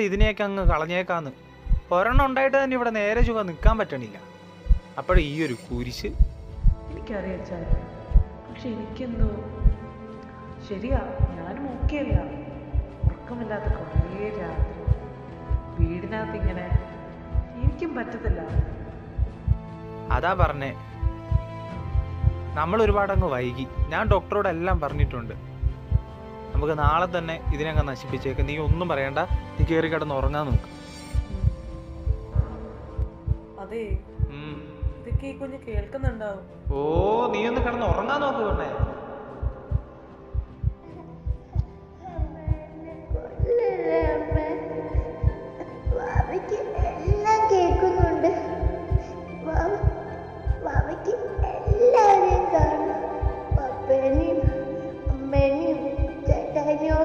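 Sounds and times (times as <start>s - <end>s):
heartbeat thumps: 0.0s - 0.9s, 1.6s - 2.4s, 3.2s - 3.8s, 4.6s - 5.2s, 6.1s - 7.0s, 7.6s - 8.4s, 9.1s - 9.9s, 10.8s - 57.0s
soft music: 0.0s - 57.0s.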